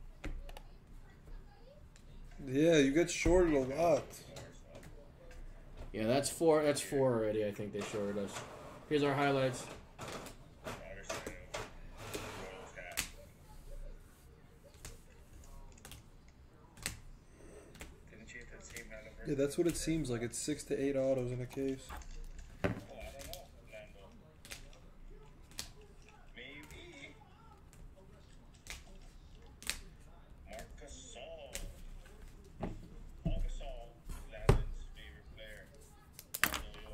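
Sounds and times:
trading cards being handled: 10.2 - 34.4.

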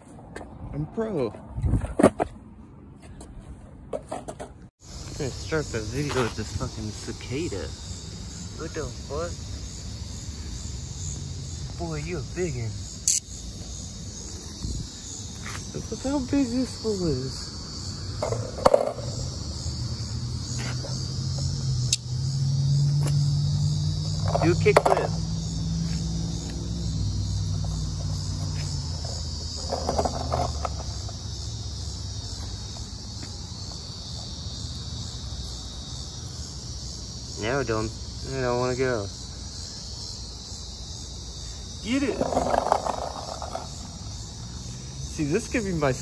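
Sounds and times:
cicadas droning: 4.8 - 46.0.

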